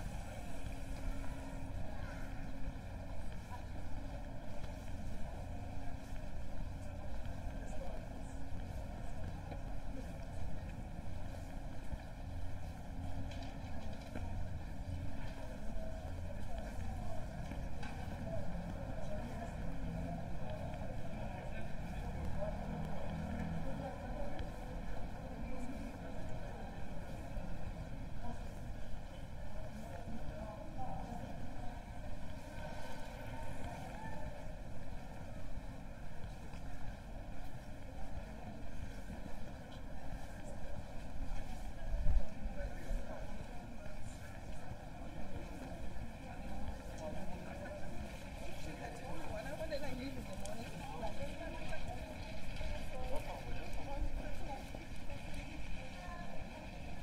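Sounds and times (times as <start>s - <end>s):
passers-by talking: 0.0s - 57.0s.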